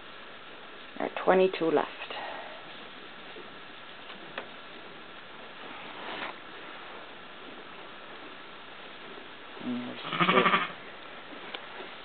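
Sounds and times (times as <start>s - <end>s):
sheep bleating: 10.0s - 10.8s.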